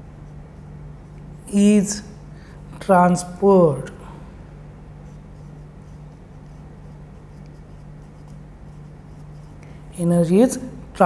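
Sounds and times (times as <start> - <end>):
steady low hum: 0.0 - 11.0
pen scratching on paper: 5.0 - 9.6.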